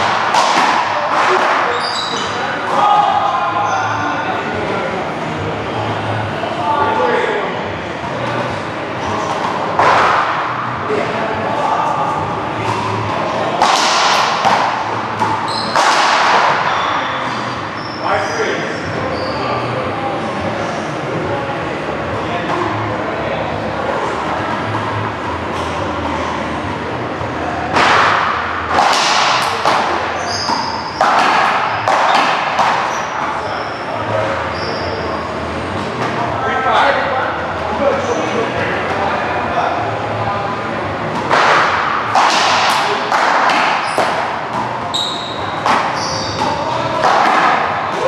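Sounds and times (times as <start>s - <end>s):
ball cracking off paddles and wall: 0.0s - 1.8s, 13.6s - 16.7s, 27.7s - 33.0s, 41.2s - 48.0s
sneakers squeaking on court floor: 1.6s - 2.5s, 15.1s - 15.9s, 16.5s - 18.1s, 18.7s - 19.7s, 29.8s - 35.4s, 43.6s - 47.0s.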